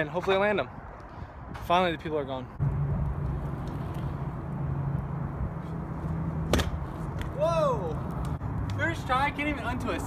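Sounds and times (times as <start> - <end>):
scooter wheels rolling on asphalt: 0.0 - 10.0
scooter landing clack: 6.4 - 7.4.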